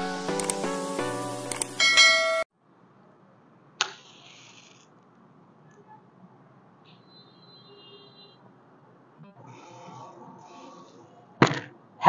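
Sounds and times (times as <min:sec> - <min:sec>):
faint hiss: 0:00.0 - 0:02.4, 0:03.8 - 0:04.9
quick clicks: 0:00.3 - 0:00.6, 0:01.5 - 0:01.8
chime-like jingle: 0:01.8 - 0:02.4
bright bell chime: 0:01.8 - 0:02.5.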